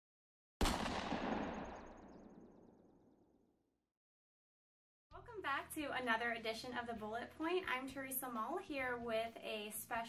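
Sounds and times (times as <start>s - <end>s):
boom sound effect: 0.6s - 2.4s.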